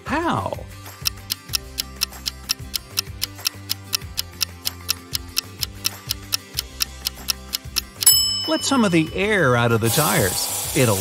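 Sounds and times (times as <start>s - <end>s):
background music with low notes: 0.0s - 11.0s
clock ticking: 0.9s - 9.4s.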